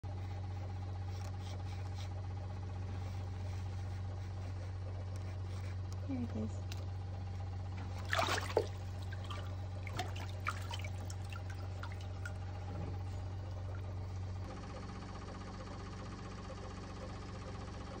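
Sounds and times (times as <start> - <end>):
steady low hum: 0.0 - 18.0
water dripping: 7.8 - 12.5
water splashing: 7.8 - 12.6.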